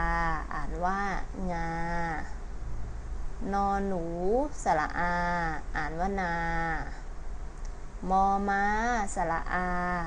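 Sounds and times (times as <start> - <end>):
woman pronouncing syllables: 0.0 - 2.4, 3.4 - 7.0, 8.0 - 10.0.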